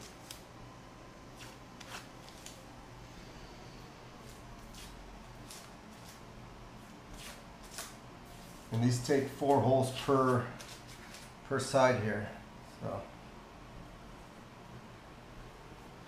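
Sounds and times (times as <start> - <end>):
soft scratches: 1.3 - 2.6
tape rustling and crinkling: 1.4 - 2.7, 10.2 - 11.4.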